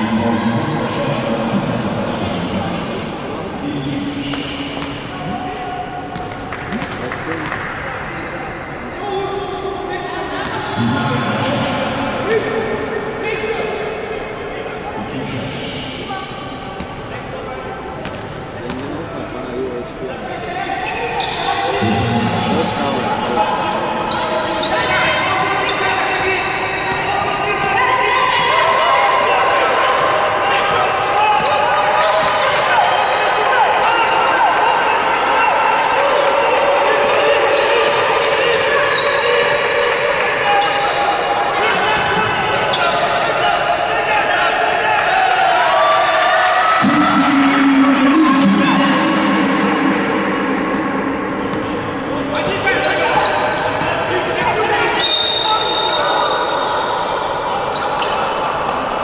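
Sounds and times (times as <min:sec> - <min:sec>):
players calling out: 0:20.8 - 0:59.0
basketball bouncing on court: 0:50.5 - 0:52.6.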